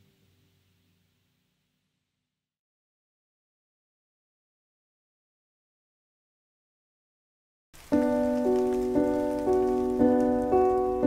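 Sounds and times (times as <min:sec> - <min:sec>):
solo piano: 0:07.8 - 0:11.0.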